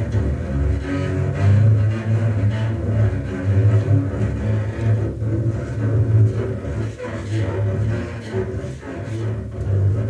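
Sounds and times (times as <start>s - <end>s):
bowed double bass drone: 0.0s - 10.0s
clarinet: 0.0s - 10.0s.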